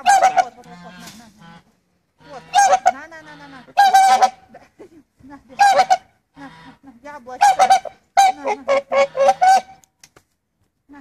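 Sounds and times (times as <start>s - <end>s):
swan honking: 0.0s - 4.5s, 5.5s - 9.8s.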